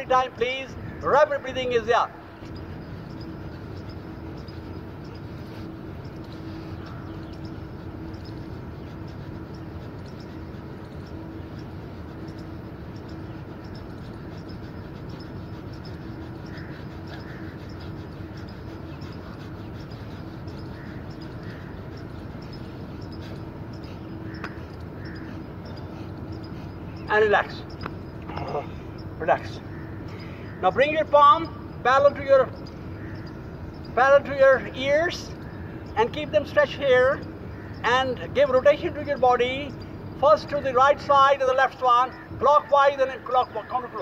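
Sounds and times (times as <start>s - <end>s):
faint low hum: 0.0s - 44.0s
man breathing rapidly through nose: 2.6s - 29.2s, 29.9s - 30.6s.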